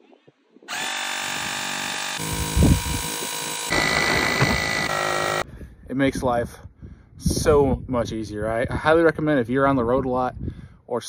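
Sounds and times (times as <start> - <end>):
tire inflator compressor running: 0.7 - 5.4.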